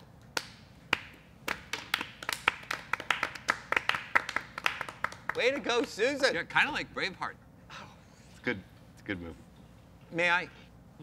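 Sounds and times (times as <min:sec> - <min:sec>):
people clapping: 0:00.2 - 0:06.2.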